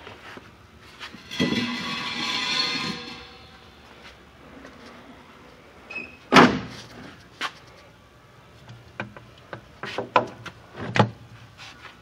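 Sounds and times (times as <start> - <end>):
metal panel slamming shut: 6.3 - 6.7.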